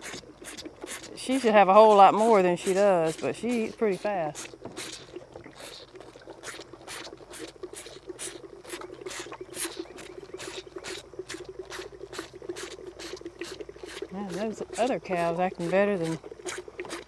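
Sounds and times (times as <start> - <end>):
calf sucking from bottle: 0.0 - 17.0
cow crunching feed: 0.0 - 17.0.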